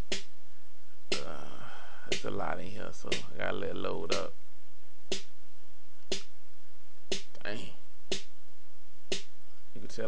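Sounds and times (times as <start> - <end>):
drum machine snare hit: 0.0 - 0.3, 1.1 - 1.5, 2.1 - 4.3, 5.1 - 5.4, 6.1 - 6.3, 7.1 - 7.4, 8.0 - 8.4, 9.1 - 9.4.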